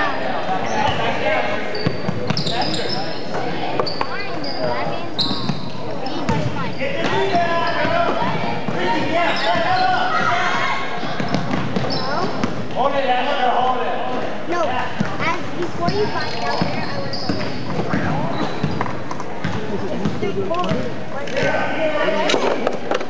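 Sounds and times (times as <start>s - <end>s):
voices calling out: 0.0s - 12.5s
sneakers squeaking: 0.5s - 12.8s, 15.0s - 21.5s
basketball bouncing: 5.3s - 10.3s, 11.0s - 12.7s, 15.8s - 21.0s.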